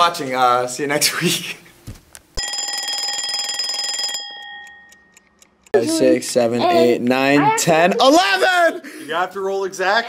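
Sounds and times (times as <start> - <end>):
alarm clock click: 2.4 - 5.8
alarm clock ringing: 2.4 - 5.8.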